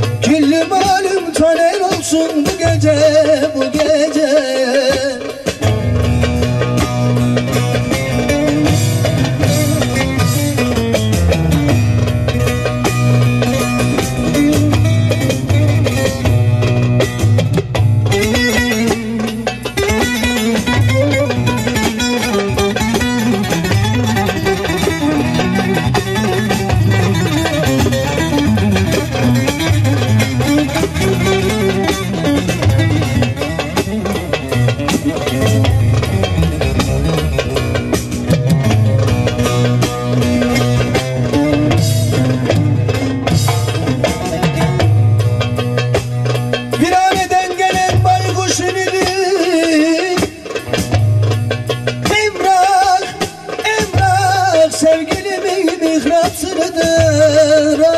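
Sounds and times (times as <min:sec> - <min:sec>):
electric long-necked lute: 0:00.0 - 0:57.9
hand drum: 0:00.0 - 0:57.9
keyboard backing: 0:00.0 - 0:57.9
low repeating bass line: 0:05.6 - 0:46.7.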